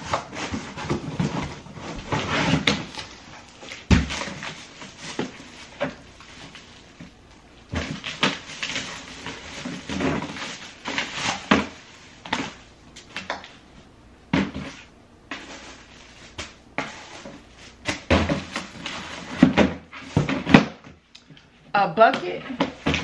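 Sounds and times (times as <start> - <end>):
cardboard rustling and scraping: 0.0 - 13.7, 14.3 - 20.9.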